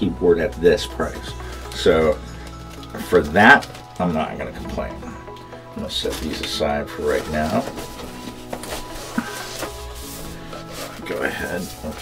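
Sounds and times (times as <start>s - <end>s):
soft background music: 0.0s - 12.0s
keyboard scraping in foam box: 6.1s - 12.0s.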